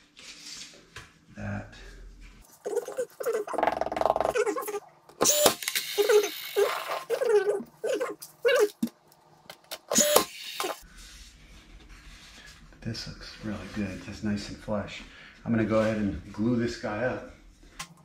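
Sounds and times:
wood squeaking and creaking: 2.6 - 5.4, 6.0 - 8.9.

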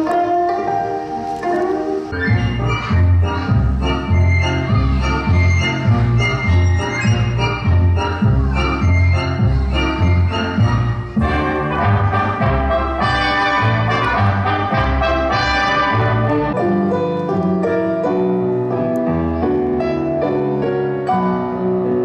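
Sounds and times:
instrumental ballet music: 0.0 - 22.0.

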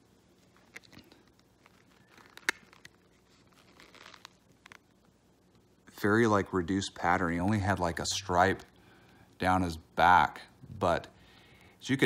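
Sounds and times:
plastic cup crinkling: 0.4 - 5.0.

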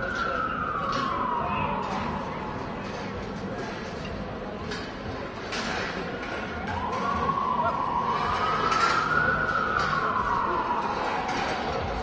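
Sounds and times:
police siren wailing: 0.0 - 3.1, 6.5 - 12.0.

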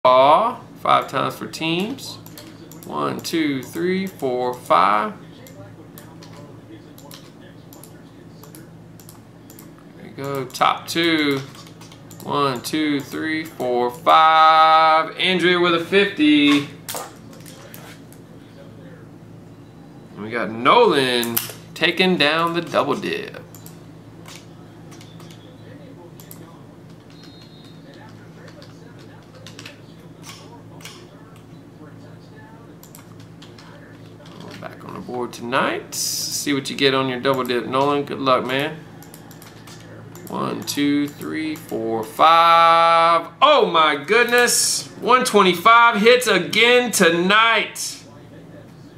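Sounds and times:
low steady hum: 0.0 - 48.9.

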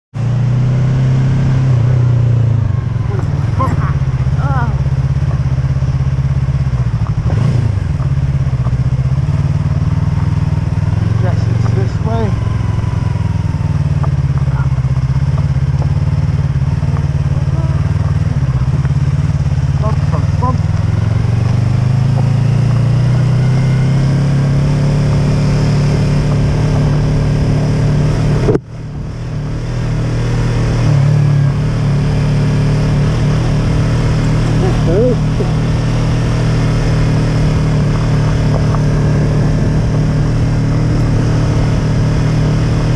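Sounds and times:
motorcycle engine running: 0.1 - 42.9.

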